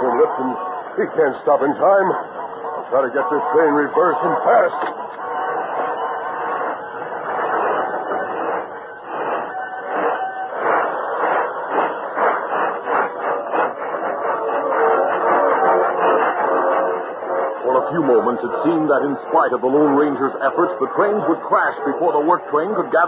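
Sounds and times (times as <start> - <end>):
old radio drama music: 0.0 - 23.0
steam locomotive chuffing: 0.0 - 23.0.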